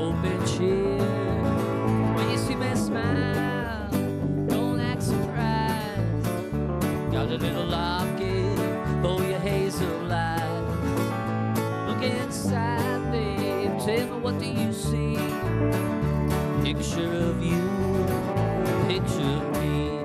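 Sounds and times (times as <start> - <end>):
bass: 0.0 - 20.0
electric guitar: 0.0 - 20.0
strummed acoustic guitar: 0.0 - 20.0.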